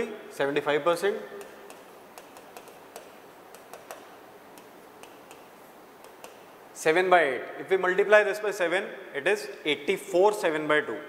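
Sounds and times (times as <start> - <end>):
chalk tapping on chalkboard: 1.3 - 6.6.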